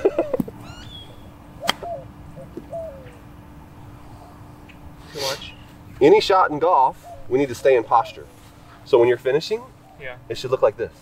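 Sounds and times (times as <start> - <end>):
birds chirping: 0.5 - 10.5
low falling bird calls: 0.6 - 3.3.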